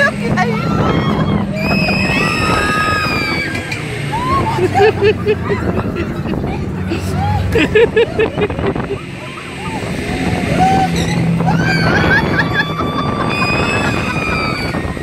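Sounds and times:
children laughing and shrieking: 0.0 - 15.0.

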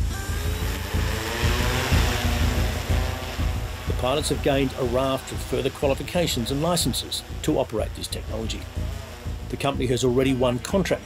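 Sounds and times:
background music: 0.0 - 11.0
drone propellers whirring: 0.0 - 11.0.

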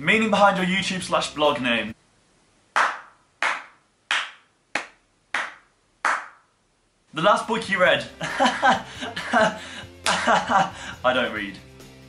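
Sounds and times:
slow hand claps: 2.8 - 6.5, 10.0 - 10.3.

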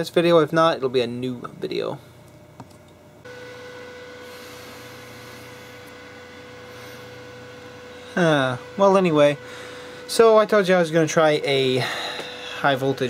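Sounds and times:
electric fan running: 0.0 - 13.0.

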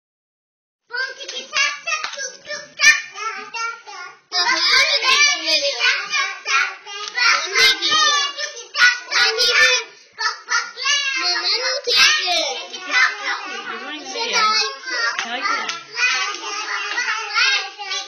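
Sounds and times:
girls singing and chanting: 0.9 - 18.0.

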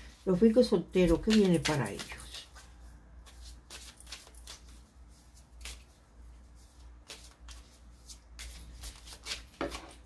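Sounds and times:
cards being shuffled: 1.0 - 6.0, 6.7 - 10.0.

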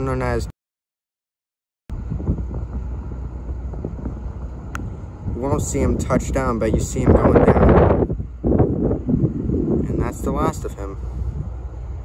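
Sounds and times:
distant jet airliner rumble: 1.9 - 12.0
wind buffeting microphone: 1.9 - 12.0.

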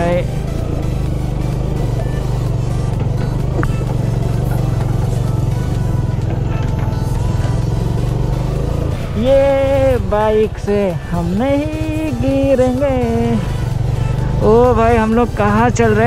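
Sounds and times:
background music: 0.0 - 16.0
motorcycle engine running: 0.0 - 16.0.

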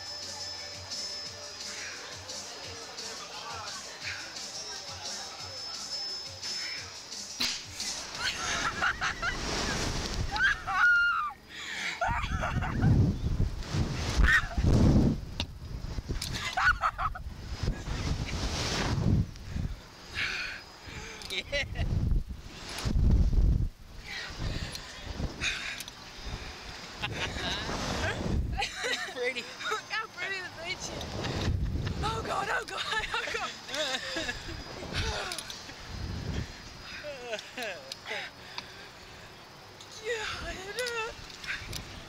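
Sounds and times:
people laughing and squealing: 1.7 - 5.5, 7.7 - 13.1, 14.2 - 14.7, 16.2 - 18.1, 26.9 - 30.2, 30.8 - 35.9
riders shrieking and yelping: 10.3 - 12.5, 14.2 - 14.6
wind buffeting microphone: 12.1 - 19.8, 21.5 - 25.6, 26.2 - 28.8, 30.5 - 33.3, 34.2 - 36.8.

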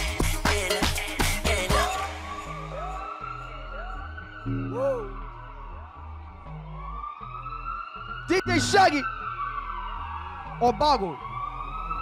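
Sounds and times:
siren-like synth sweeps: 2.4 - 12.0
stepping bass notes: 4.5 - 5.3
held high synth tone: 4.5 - 5.4.

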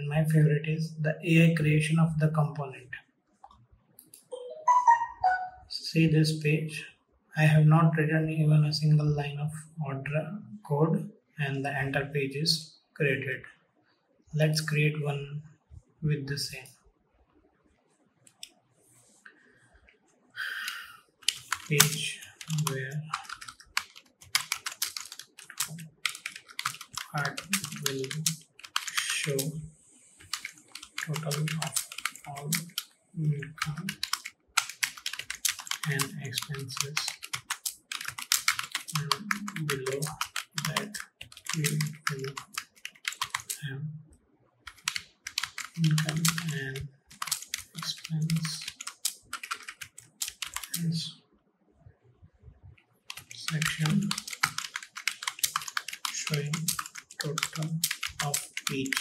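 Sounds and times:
typing on computer keyboard: 20.6 - 29.6, 30.2 - 43.6, 44.6 - 50.9, 53.1 - 59.0.

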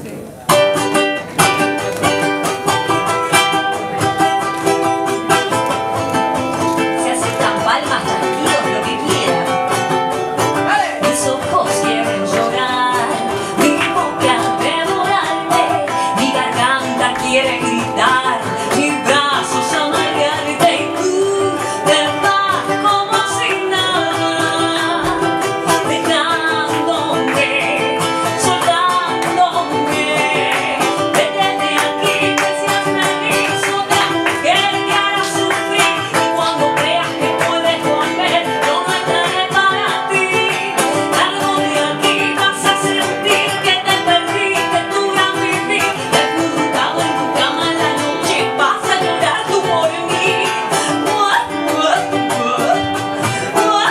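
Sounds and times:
ukulele playing: 0.0 - 53.9
woman singing: 0.5 - 53.9.

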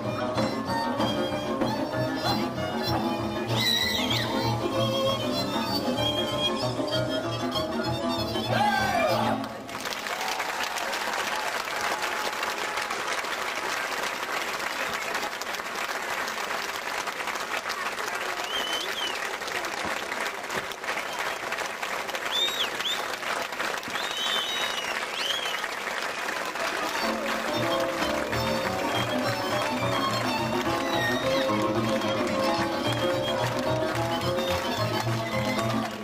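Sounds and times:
folk band tune: 0.0 - 9.5, 26.4 - 36.0
high calls from crowd: 8.5 - 13.1
audience applauding: 8.9 - 36.0.

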